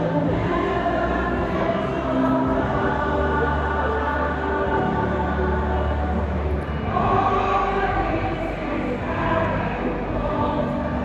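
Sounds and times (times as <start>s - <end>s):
choir singing a held chord: 0.0s - 11.0s.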